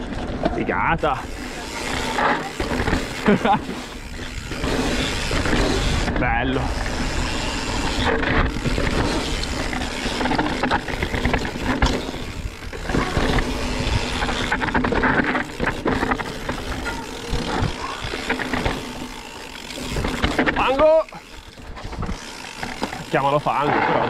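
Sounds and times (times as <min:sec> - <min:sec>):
bike knocking and rattling: 0:00.0 - 0:24.0
bike tyres rolling on dirt: 0:00.0 - 0:24.0.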